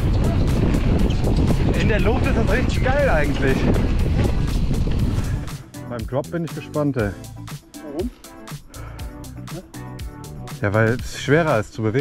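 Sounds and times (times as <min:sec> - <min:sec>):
bike tyres on dirt trail: 0:00.0 - 0:05.7
wind rumble on microphone: 0:00.0 - 0:05.7
background music with steady beat: 0:00.0 - 0:12.0.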